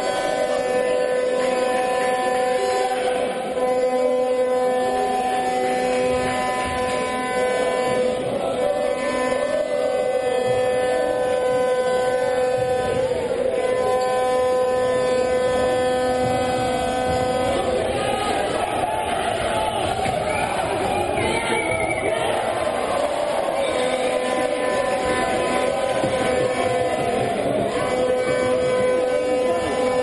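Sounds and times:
crowd noise in arena: 0.0s - 30.0s.

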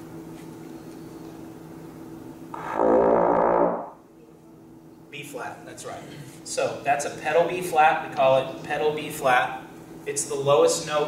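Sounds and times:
faint room hum: 0.0s - 11.0s
trombone low held note: 2.6s - 4.0s.

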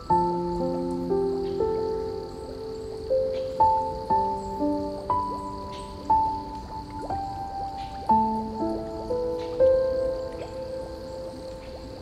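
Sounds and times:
slow soft piano music: 0.0s - 12.0s
water dripping: 0.0s - 12.0s.

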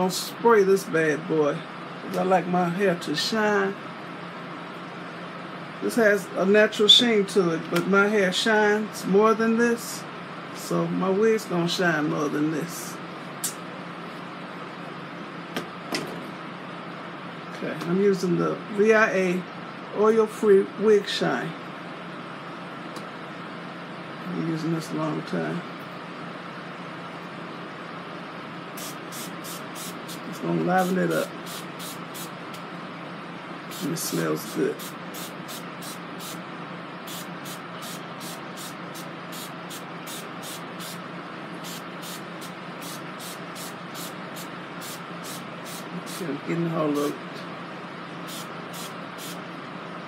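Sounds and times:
room noise hiss: 16.5s - 50.0s.

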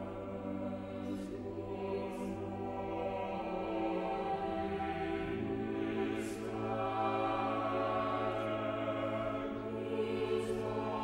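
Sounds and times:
choir and orchestra classical music: 0.0s - 11.0s.

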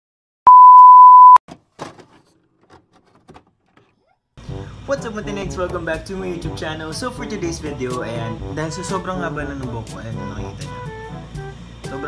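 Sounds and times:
steady pure test tone beep: 0.5s - 1.4s.

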